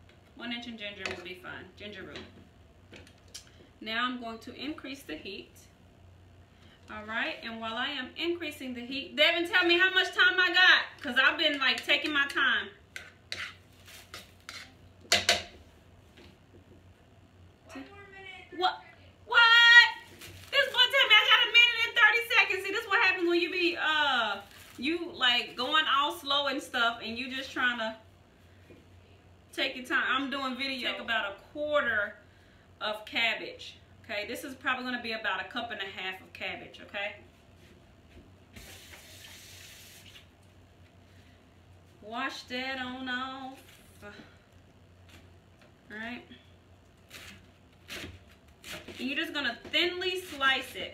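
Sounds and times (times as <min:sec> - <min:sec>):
kitchen tap running: 0:38.6 - 0:40.2.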